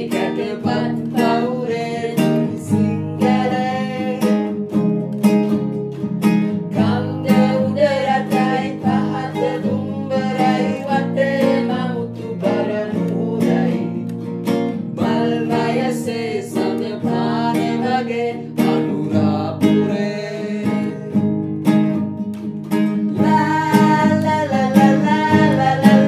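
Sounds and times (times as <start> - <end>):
man and woman singing: 0.0 - 4.8, 6.5 - 21.4, 23.0 - 26.0
acoustic guitar strumming: 0.0 - 26.0
ukulele strumming: 0.0 - 26.0.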